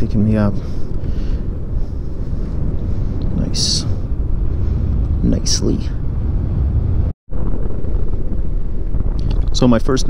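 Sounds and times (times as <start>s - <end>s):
wind rushing over microphone: 0.0s - 10.0s.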